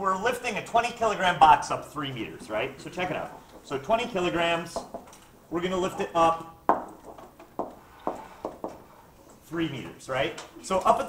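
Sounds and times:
stylus tapping on tablet screen: 6.7 - 8.9.

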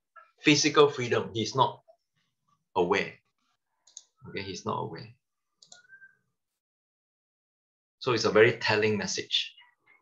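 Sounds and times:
man speaking: 4.2 - 5.2.

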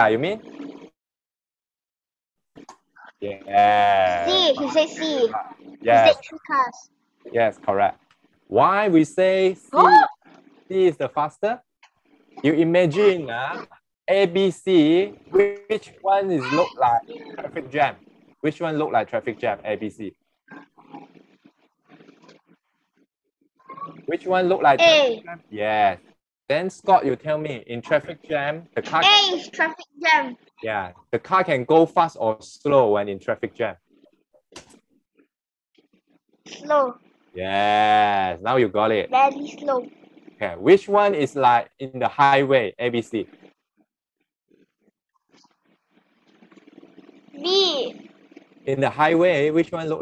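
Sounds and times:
child's voice over video call: 3.0 - 6.9, 9.8 - 10.2, 16.2 - 17.6, 23.7 - 24.0, 24.6 - 25.3, 28.9 - 30.5, 36.5 - 37.0, 39.1 - 39.9, 47.4 - 48.0.

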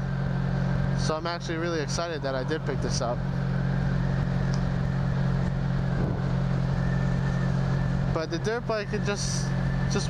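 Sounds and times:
motorcycle engine humming: 0.0 - 10.0.

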